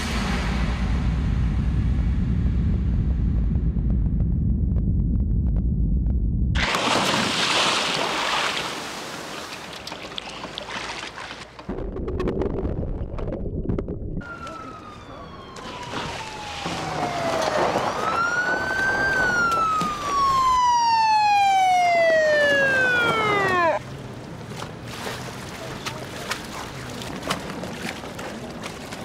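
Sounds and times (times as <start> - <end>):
police siren wailing: 14.2 - 23.8.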